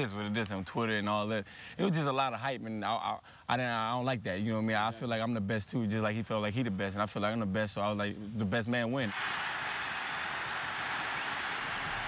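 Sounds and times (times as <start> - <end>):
stadium crowd cheering: 9.1 - 12.0.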